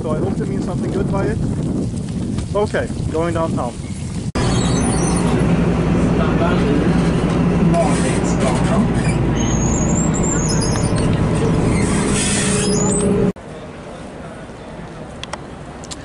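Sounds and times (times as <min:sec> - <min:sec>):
high wavering squeal: 0:04.4 - 0:05.4, 0:09.0 - 0:13.3
vehicle running noise: 0:04.4 - 0:13.4.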